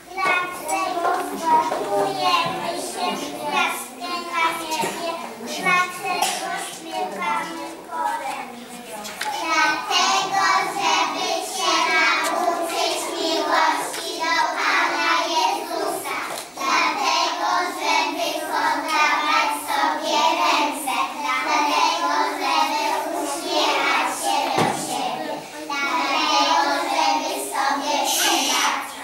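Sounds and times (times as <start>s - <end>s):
young children singing: 0.0s - 29.0s.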